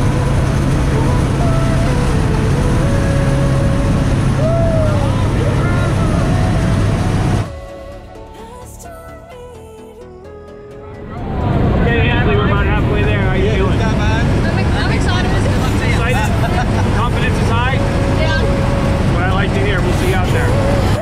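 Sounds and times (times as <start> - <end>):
people's voices: 0.0 - 7.5, 10.9 - 21.0
plane engine and propeller drone: 0.0 - 8.4, 10.8 - 21.0.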